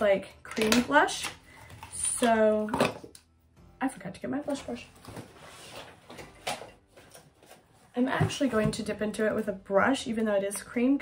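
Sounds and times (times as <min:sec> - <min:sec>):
rustling and handling noise: 0:04.5 - 0:09.0.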